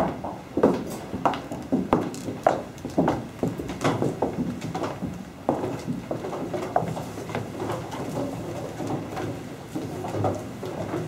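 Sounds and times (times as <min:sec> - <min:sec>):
footsteps on wooden deck: 0:00.0 - 0:11.0.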